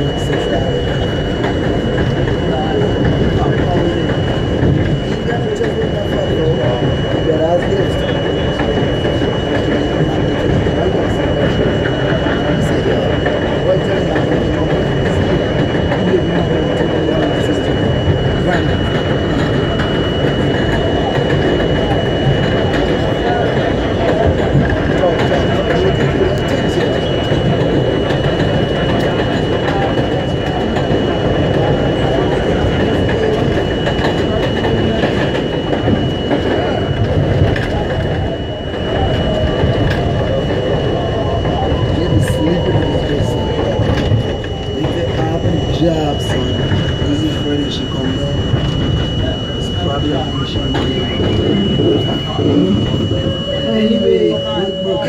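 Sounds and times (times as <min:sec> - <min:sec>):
high whine: 0:00.0 - 0:55.0
train wheels rumbling on rails: 0:00.0 - 0:55.0.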